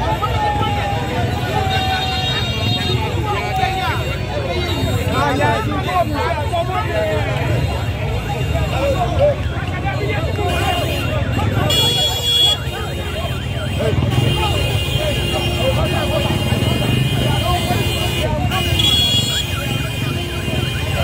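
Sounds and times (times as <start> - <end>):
crowd voices: 0.0 - 21.0
motorcycle and vehicle engines: 0.0 - 21.0.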